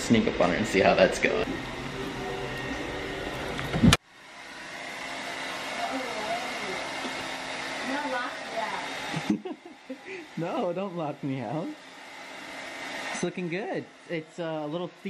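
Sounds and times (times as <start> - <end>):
hair dryer blowing air: 0.0 - 15.0.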